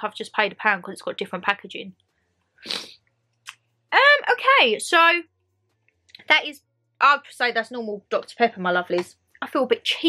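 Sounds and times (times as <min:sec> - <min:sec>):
sharp breath or sniff: 0:02.6 - 0:03.0.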